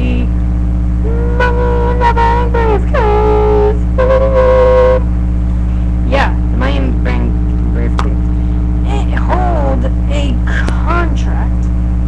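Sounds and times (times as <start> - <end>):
boy humming and vocalising: 0.0 - 0.3, 1.0 - 5.0
low electrical hum: 0.0 - 12.0.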